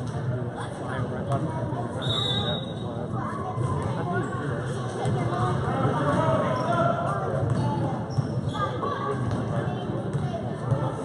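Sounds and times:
spectators chattering: 0.0 - 11.0.

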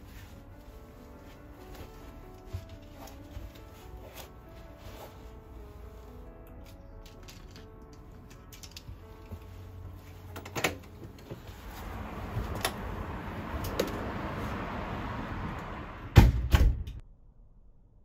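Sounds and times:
soft background music: 0.0 - 16.1.

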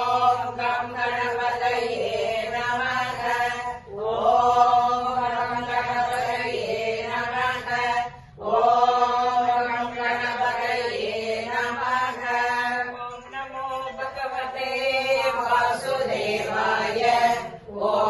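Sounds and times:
person chanting a hymn: 0.0 - 18.0.

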